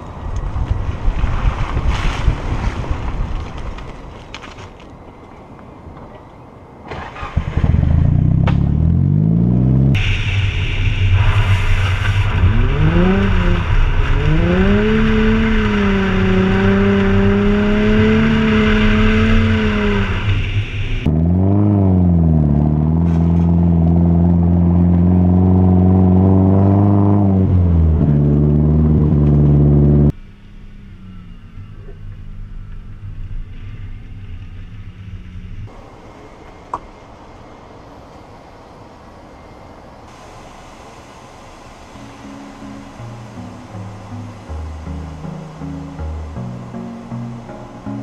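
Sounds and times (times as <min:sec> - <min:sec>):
wind and road noise: 0:00.0 - 0:48.0
car engine revving: 0:07.1 - 0:30.3.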